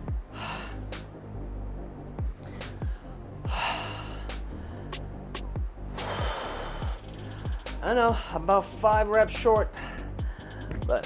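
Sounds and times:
background music with beat: 0:00.0 - 0:11.0
man gasping for breath: 0:09.8 - 0:10.9.

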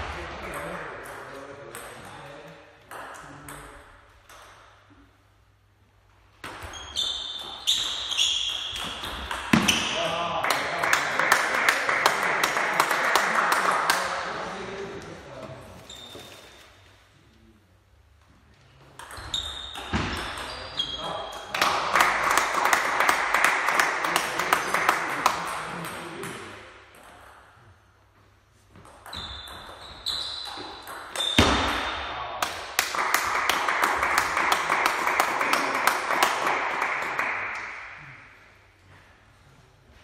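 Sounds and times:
table tennis ball pinging: 0:06.4 - 0:09.9, 0:19.0 - 0:20.6, 0:28.8 - 0:31.9
voices in a large hall: 0:09.9 - 0:19.0.

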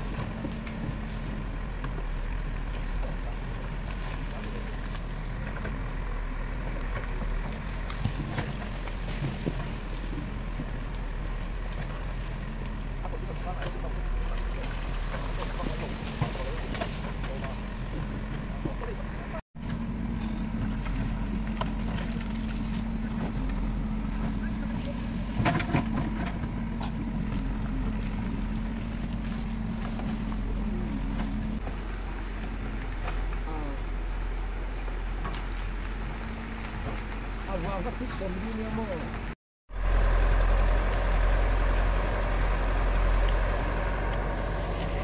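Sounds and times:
diesel engine under load: 0:00.0 - 0:45.0.

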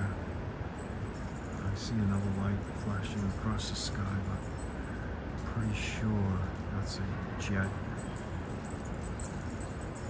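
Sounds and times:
city background rumble: 0:00.0 - 0:10.0
faint high steady tone: 0:00.0 - 0:10.0.

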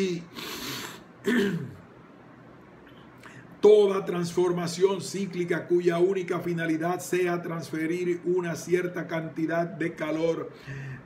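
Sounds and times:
man clearing his throat: 0:01.2 - 0:01.9.

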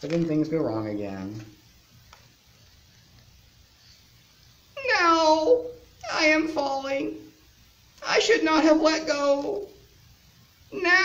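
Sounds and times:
man's high-pitched falling voice: 0:04.8 - 0:07.0, 0:10.8 - 0:11.0.

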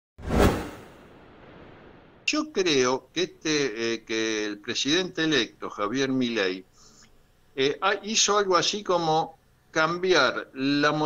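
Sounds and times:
whoosh sound effect: 0:00.2 - 0:02.1.

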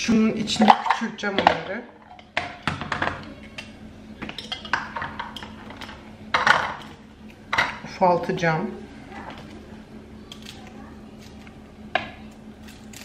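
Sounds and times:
kitchen utensils knocking and clinking: 0:00.5 - 0:07.8.

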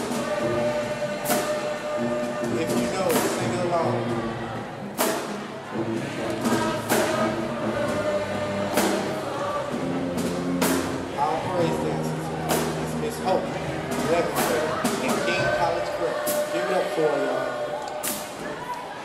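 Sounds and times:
choir singing held notes: 0:00.0 - 0:19.0.

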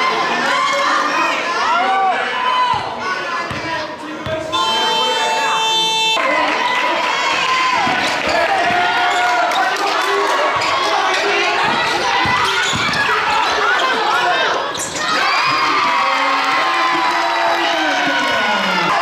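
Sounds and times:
people calling out: 0:04.5 - 0:09.4
sneakers squeaking on court floor: 0:11.6 - 0:15.6.

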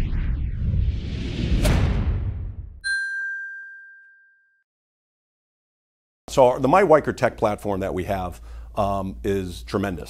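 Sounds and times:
bright bell-like ding: 0:02.8 - 0:04.6.

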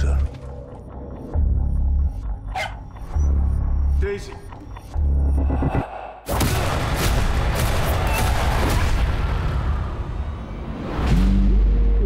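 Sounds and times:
dog barking: 0:02.5 - 0:02.9.

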